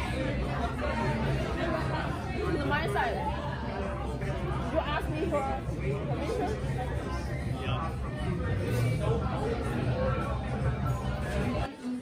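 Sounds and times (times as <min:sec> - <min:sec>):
people talking babble: 0:00.0 - 0:12.0.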